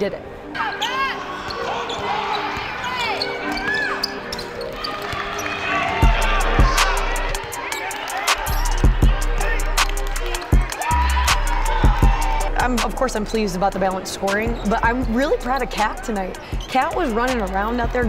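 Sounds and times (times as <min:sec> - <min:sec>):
sneakers squeaking: 0:00.5 - 0:08.9, 0:14.0 - 0:17.6
music with deep bass: 0:06.0 - 0:07.4, 0:08.4 - 0:13.8, 0:14.6 - 0:18.0.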